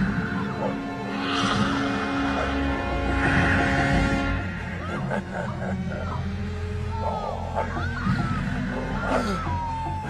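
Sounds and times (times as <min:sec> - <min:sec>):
film score held tones: 0:00.0 - 0:10.0.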